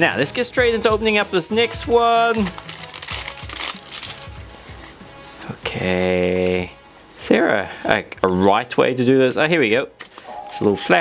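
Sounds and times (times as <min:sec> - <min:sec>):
plastic wrap crinkling: 0:00.8 - 0:05.8.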